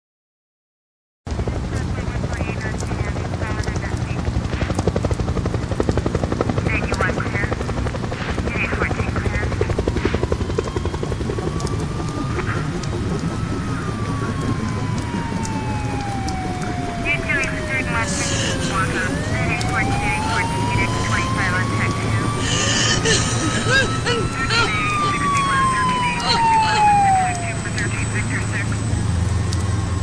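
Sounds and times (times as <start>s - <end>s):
helicopter rotor chopping: 1.3s - 30.0s
siren: 1.3s - 30.0s.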